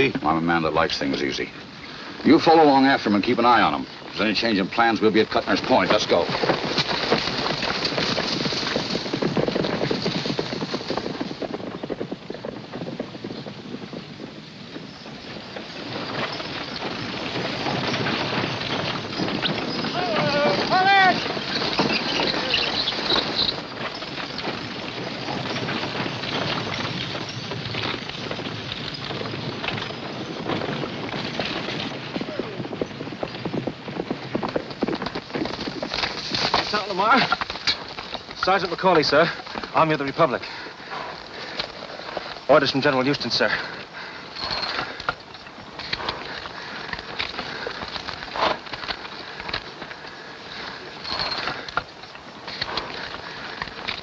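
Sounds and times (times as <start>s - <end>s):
horses' hooves clattering: 0.0s - 54.0s
wagon train moving: 0.0s - 54.0s
horse whinnying: 18.3s - 24.1s
man calling out: 20.0s - 21.2s.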